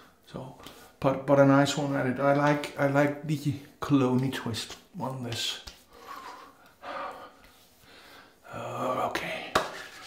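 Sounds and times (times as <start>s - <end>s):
man breathing: 5.9s - 8.4s.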